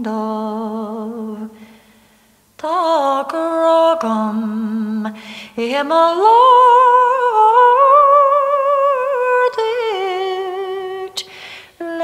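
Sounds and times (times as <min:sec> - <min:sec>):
person singing unaccompanied: 0:00.0 - 0:01.6, 0:02.6 - 0:12.0.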